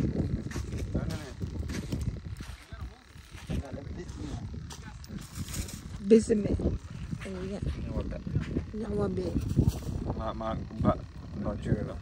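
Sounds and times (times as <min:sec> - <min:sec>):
voices talking: 0:00.0 - 0:12.0
wind buffeting microphone: 0:00.0 - 0:12.0.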